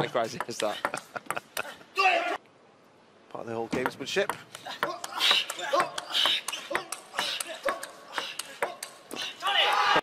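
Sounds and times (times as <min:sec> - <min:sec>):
person shouting: 0:02.0 - 0:02.4, 0:08.6 - 0:10.0.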